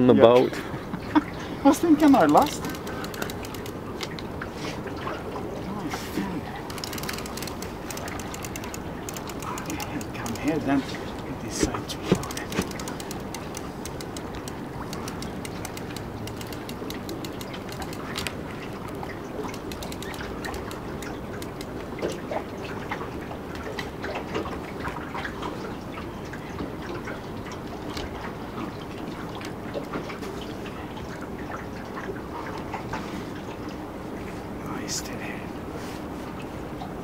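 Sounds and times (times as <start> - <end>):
water against boat hull: 1.0 - 34.4
light clicks and knocks: 2.0 - 4.2, 6.6 - 22.4.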